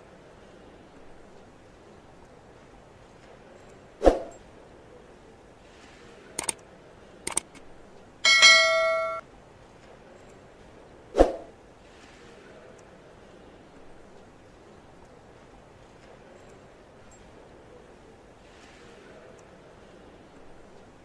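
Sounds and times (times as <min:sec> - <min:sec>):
quick double clicks: 0:06.4 - 0:06.6, 0:07.3 - 0:07.6
notification bell ding: 0:08.2 - 0:09.2.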